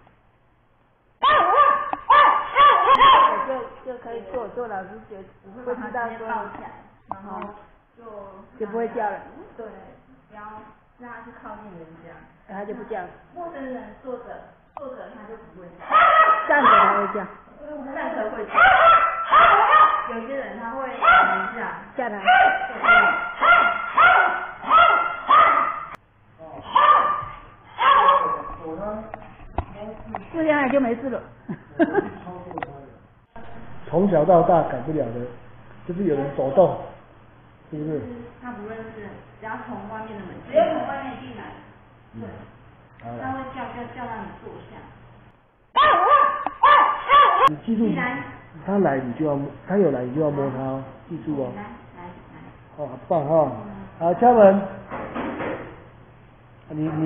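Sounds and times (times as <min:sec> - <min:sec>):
small dog barking: 0:01.2 - 0:03.6, 0:15.8 - 0:17.3, 0:18.5 - 0:20.2, 0:21.0 - 0:21.6, 0:22.2 - 0:26.0, 0:26.7 - 0:28.5, 0:45.8 - 0:47.5.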